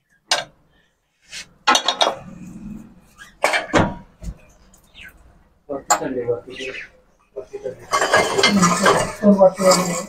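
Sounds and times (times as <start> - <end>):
metal objects clattering and scraping: 1.3 - 4.2, 7.4 - 10.0.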